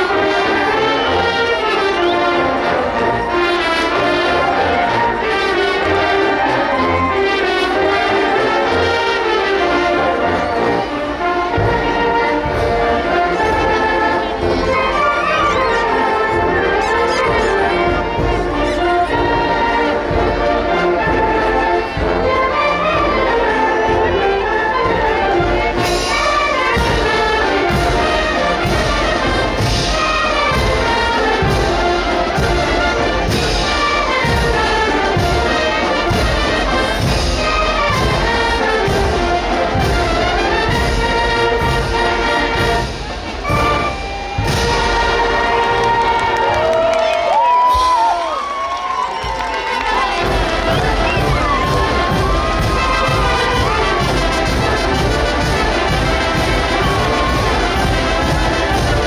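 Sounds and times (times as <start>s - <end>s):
brass band playing dance music: 0.0s - 59.0s
crowd whooping and cheering: 43.2s - 54.3s, 55.9s - 59.0s.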